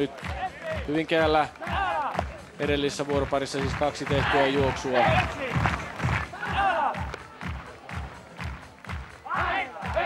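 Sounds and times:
steady drum beat: 0.4s - 10.0s.

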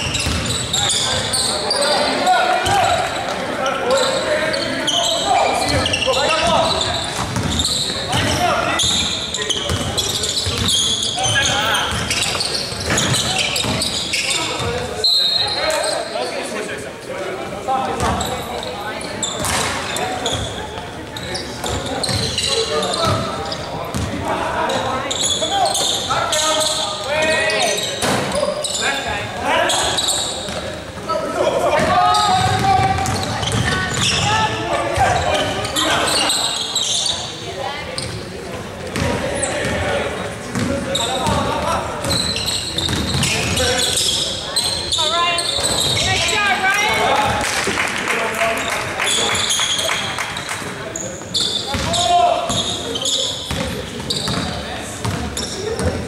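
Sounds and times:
sneaker squeaks: 0.0s - 16.7s, 17.8s - 47.4s, 48.6s - 56.0s.

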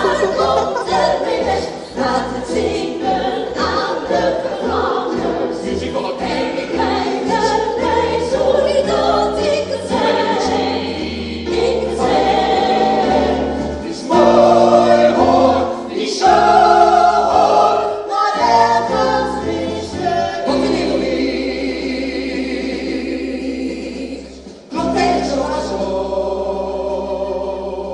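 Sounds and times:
voices singing in chords: 0.0s - 27.9s.

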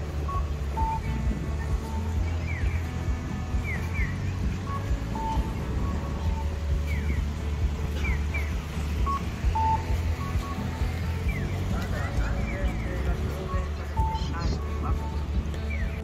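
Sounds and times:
crosswalk signal chirps: 0.0s - 16.0s
quiet background music: 0.0s - 16.0s
traffic rumble: 0.0s - 16.0s.

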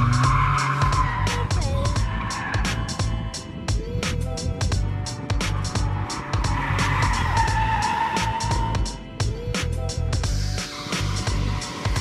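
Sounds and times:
car tyres squealing: 0.0s - 3.4s, 5.3s - 9.0s
background music with steady beat: 0.0s - 12.0s.

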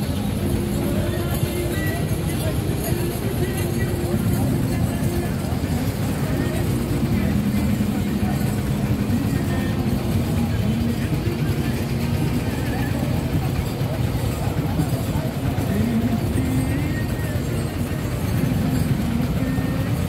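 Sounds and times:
crowd voices: 0.0s - 20.0s
low street rumble: 0.0s - 20.0s.

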